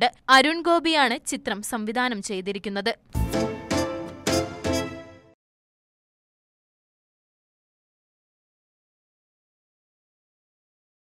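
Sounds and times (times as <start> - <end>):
news logo jingle musical hits: 3.2 - 5.4.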